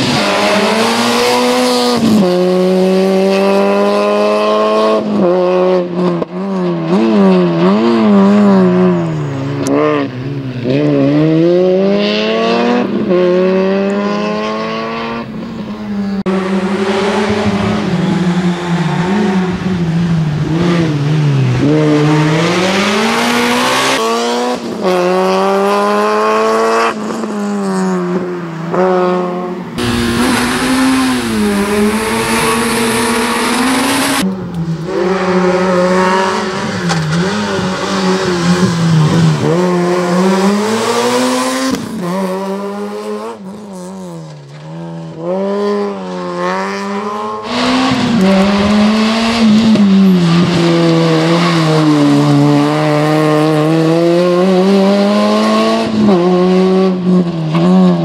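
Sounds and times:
racing car engine revving: 0:16.2 - 0:28.0, 0:28.7 - 0:58.0.

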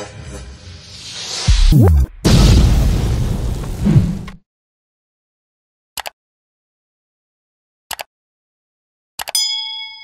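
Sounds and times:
deep boom: 0:01.5 - 0:04.3.

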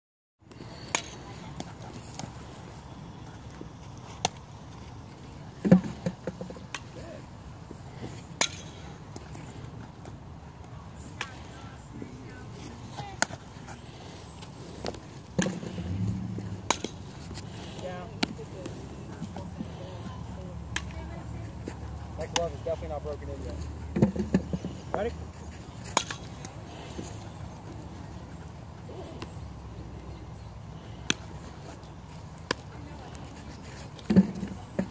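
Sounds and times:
faint distant voices: 0:00.4 - 0:34.9
balls struck and caught in gloves: 0:16.4 - 0:17.1, 0:25.9 - 0:26.6.

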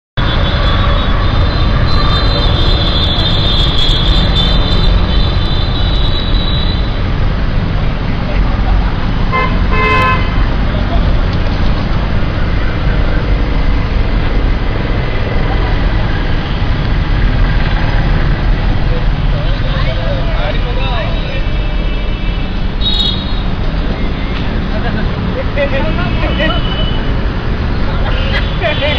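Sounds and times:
vehicle horns honking: 0:00.2 - 0:07.0, 0:09.3 - 0:10.5, 0:21.4 - 0:23.6
traffic rumble: 0:00.2 - 0:28.9.

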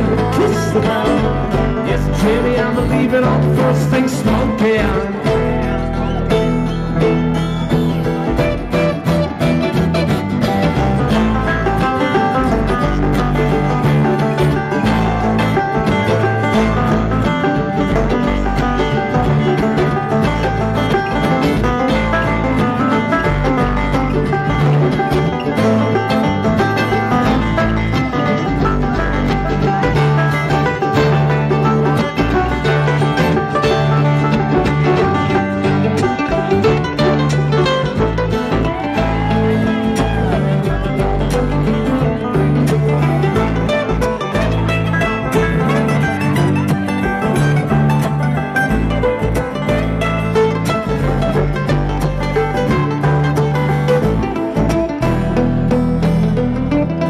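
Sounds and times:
banjo picking: 0:00.0 - 0:57.0
guitar: 0:00.0 - 0:57.0
upright bass line: 0:00.0 - 0:57.0.

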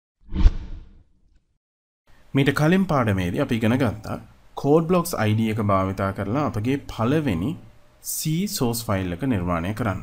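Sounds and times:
whoosh with deep low boom: 0:00.3 - 0:01.0.

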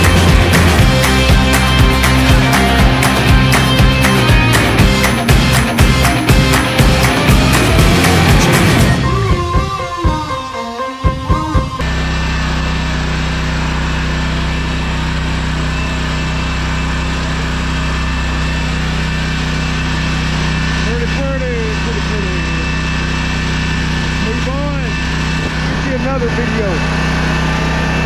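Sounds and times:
music: 0:00.0 - 0:12.6, 0:14.4 - 0:26.8.

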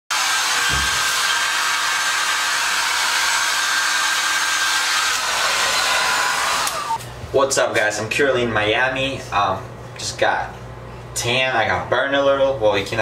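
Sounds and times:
hair dryer running: 0:00.1 - 0:07.0.

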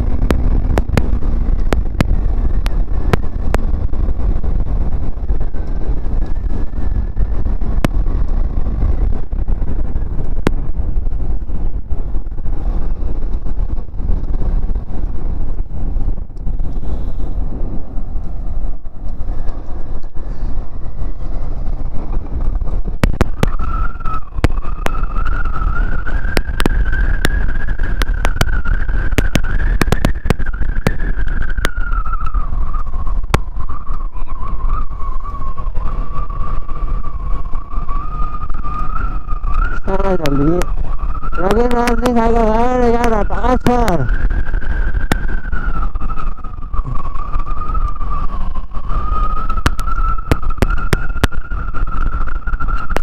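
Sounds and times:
motorcycle engine rumble: 0:00.0 - 0:53.0
wind buffeting microphone: 0:00.0 - 0:53.0
high thin whine: 0:38.4 - 0:44.2.

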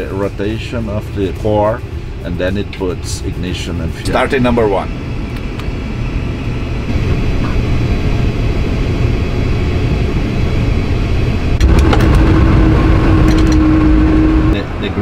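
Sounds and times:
jet engine starting rumble: 0:00.0 - 0:15.0
steady hum: 0:00.0 - 0:15.0.

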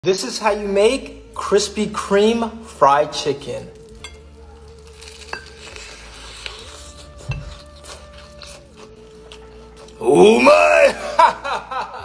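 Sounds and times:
breading crackles: 0:00.3 - 0:10.9
chewing crispy chicken: 0:01.2 - 0:11.0.

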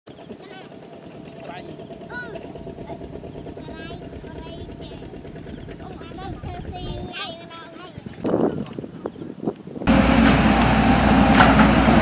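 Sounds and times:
small motorcycle engine running: 0:00.1 - 0:07.1
high squeaky calls: 0:00.2 - 0:07.0.

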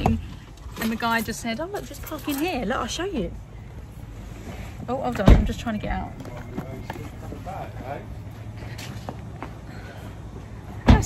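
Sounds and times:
low steady rumble: 0:00.0 - 0:11.0
faint voices: 0:05.6 - 0:10.6.

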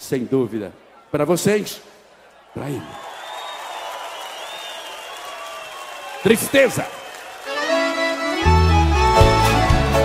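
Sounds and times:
accordion sustained notes: 0:07.2 - 0:10.0
live band playing: 0:07.5 - 0:10.0.

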